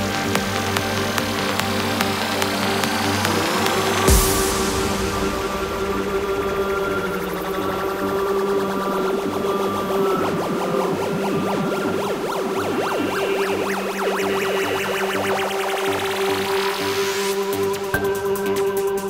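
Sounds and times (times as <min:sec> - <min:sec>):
psychedelic trance music: 0:00.0 - 0:19.0
rising synth sweep: 0:00.0 - 0:19.0.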